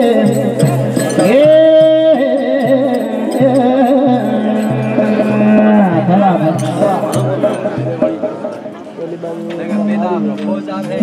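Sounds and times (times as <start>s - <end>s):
men singing through microphones: 0.0s - 8.2s.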